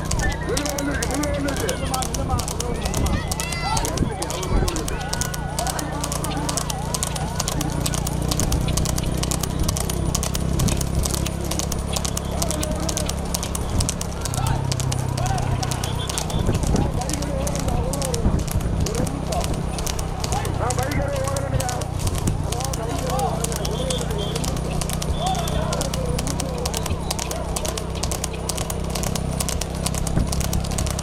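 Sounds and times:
horse hooves clattering on asphalt: 0.0 - 31.0
steady low hum: 0.0 - 31.0.

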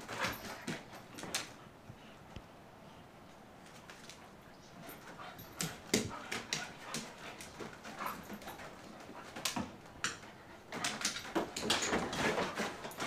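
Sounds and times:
dogs scuffling: 0.0 - 1.7, 3.6 - 13.0
dogs vocalizing while playing: 4.8 - 13.0.

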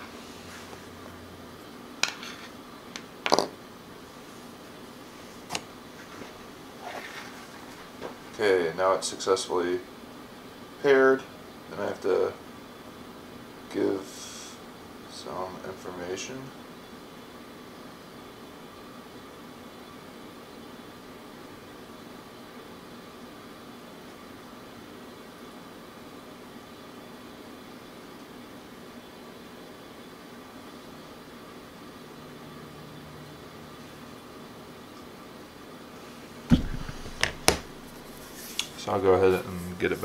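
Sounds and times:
room hum: 0.0 - 40.0
sharp knock: 36.5 - 38.2.

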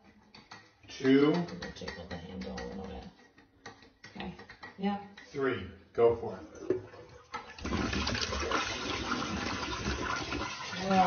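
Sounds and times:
toilet flushing: 6.1 - 11.0.

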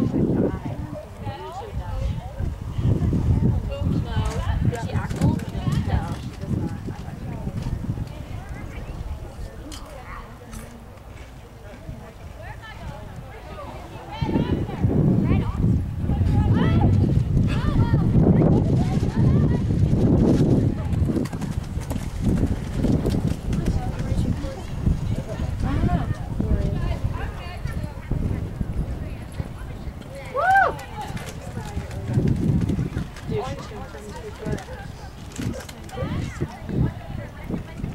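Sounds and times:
people talking: 0.0 - 37.9
horse hooves cantering on sand: 18.6 - 37.9
horse hoofbeats on sand: 18.8 - 25.6.

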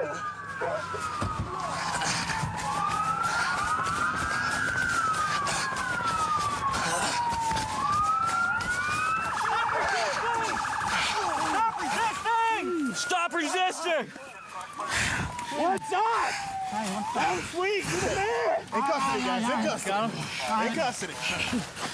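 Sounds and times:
police sirens wailing: 0.0 - 21.9.

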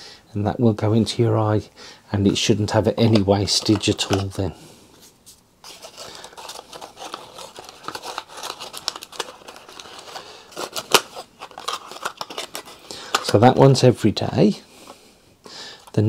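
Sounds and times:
packaging crinkly rustles: 3.0 - 4.5, 5.2 - 13.8.

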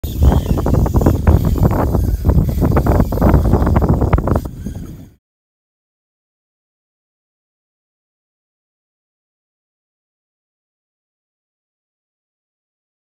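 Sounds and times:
wind buffeting microphone: 0.0 - 5.2.

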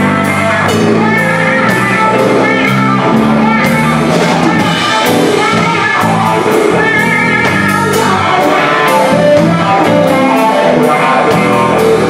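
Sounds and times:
drum kit steady beat: 0.0 - 12.0
electric guitars: 0.0 - 12.0.

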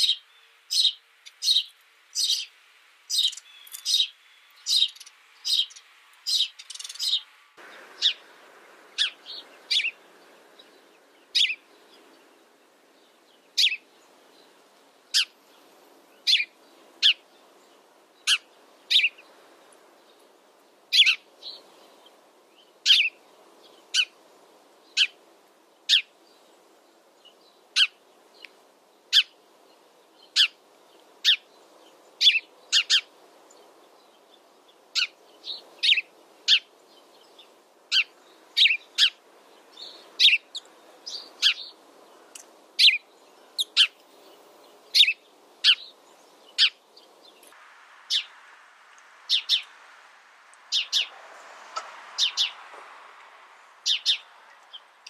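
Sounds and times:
sparrow chirping: 0.0 - 19.4, 20.9 - 24.2, 24.8 - 25.2, 25.8 - 48.4, 49.2 - 49.8, 50.6 - 51.1, 52.0 - 52.7, 53.5 - 55.0
faint background hiss: 0.0 - 55.0.

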